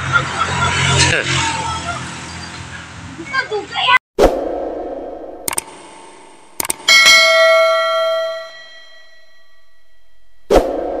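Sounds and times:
mouse clicks: 0:05.5 - 0:05.7, 0:06.6 - 0:06.9
notification bell ding: 0:06.9 - 0:10.4.

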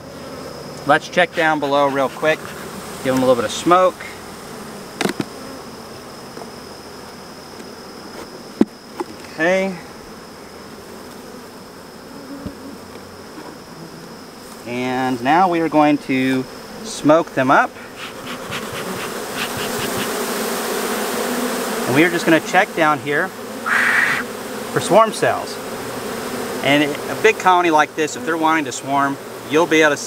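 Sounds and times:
bees buzzing: 0:00.0 - 0:30.0.

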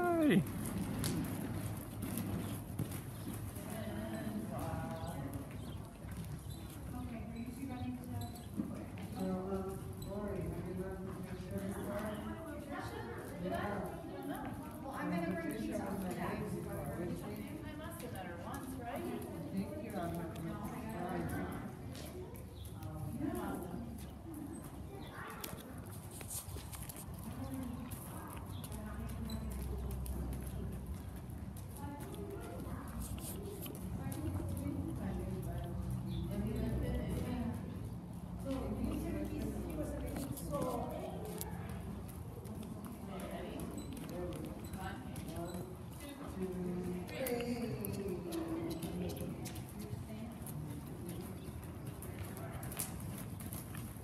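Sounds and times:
faint voices: 0:00.0 - 0:00.6, 0:11.3 - 0:54.0
horse hoofbeats on dirt: 0:00.0 - 0:54.0
horse hoofbeats on sand: 0:00.4 - 0:12.5.

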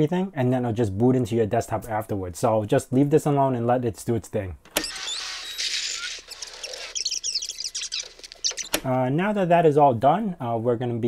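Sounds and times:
quick high squeaky chirps: 0:04.8 - 0:08.9.

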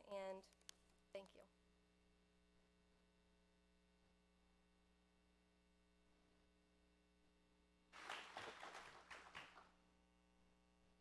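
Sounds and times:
low steady hum: 0:00.0 - 0:11.0
congregation clapping: 0:08.0 - 0:09.7.

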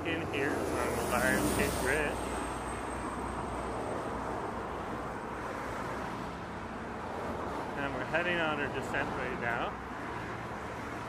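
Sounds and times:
car traffic driving past: 0:00.0 - 0:11.0.

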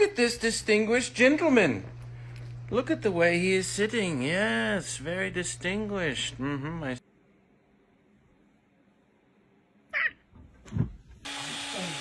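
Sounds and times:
kitten meowing: 0:10.0 - 0:10.2.

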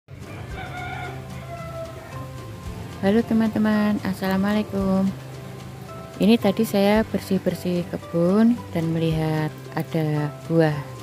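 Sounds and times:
rooster crowing: 0:00.2 - 0:02.2.

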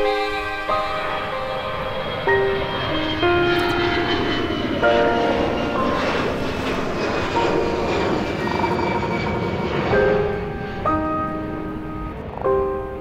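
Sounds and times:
high engine whine falling: 0:00.0 - 0:12.9
jet engines running: 0:00.0 - 0:13.0
piano chords: 0:00.0 - 0:13.0.

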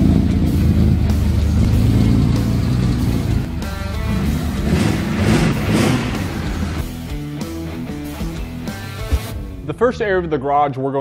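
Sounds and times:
car engine deep rumble: 0:00.0 - 0:07.7
rock music with guitar: 0:00.0 - 0:09.6.

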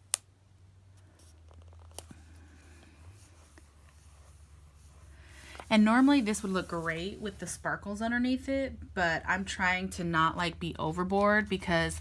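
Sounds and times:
faint paper rustle: 0:00.9 - 0:07.6.

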